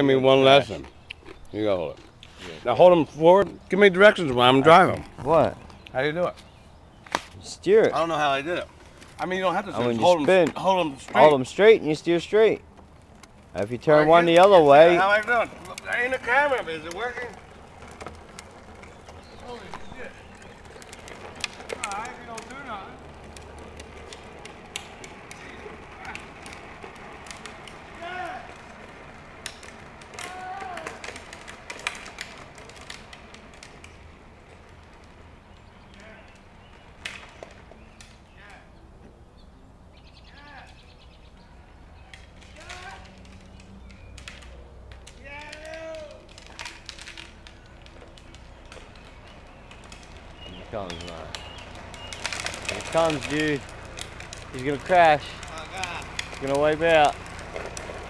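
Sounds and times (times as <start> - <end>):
bird calls: 0.0 - 11.4, 13.6 - 26.6, 33.6 - 42.6, 47.2 - 57.8
low outdoor rumble: 0.0 - 38.4, 41.7 - 58.0.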